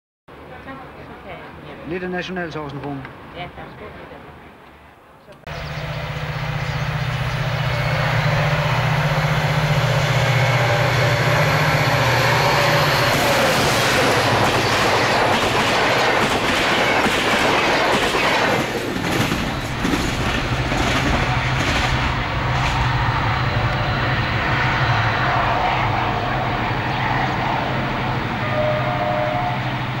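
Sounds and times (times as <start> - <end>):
diesel locomotive engine drone: 5.4 - 30.0
train rumble: 5.5 - 30.0.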